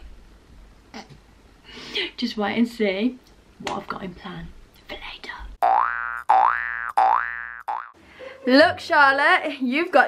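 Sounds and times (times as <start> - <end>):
cartoon boing sound effect: 5.6 - 7.9.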